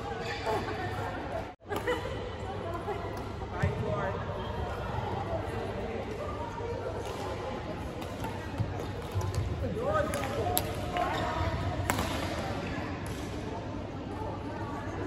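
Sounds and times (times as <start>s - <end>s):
chatter of voices: 0.0s - 15.0s.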